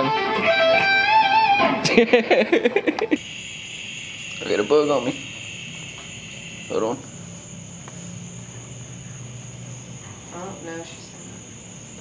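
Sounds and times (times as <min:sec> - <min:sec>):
cricket chorus: 0:01.9 - 0:12.0.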